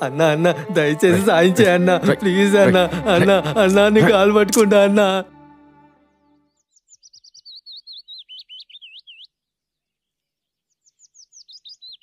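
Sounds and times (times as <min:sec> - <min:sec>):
songbird chirping: 0:06.2 - 0:12.0.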